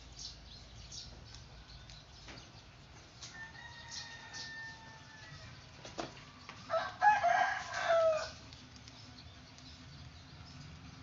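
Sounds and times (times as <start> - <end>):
rooster crowing: 3.3 - 5.6, 6.7 - 8.4.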